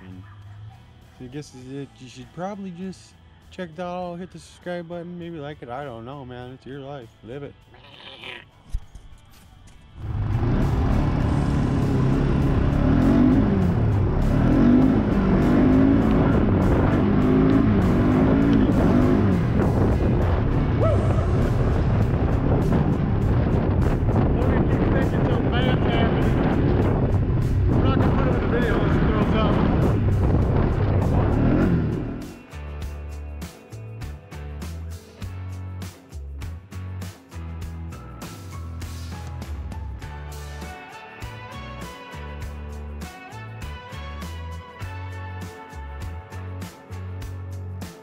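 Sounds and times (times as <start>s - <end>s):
quad bike engine revving: 10.0s - 23.0s, 26.0s - 32.4s.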